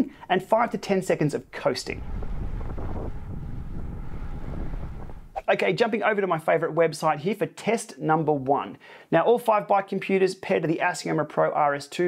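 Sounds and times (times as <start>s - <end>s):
wind buffeting microphone: 1.4s - 5.4s.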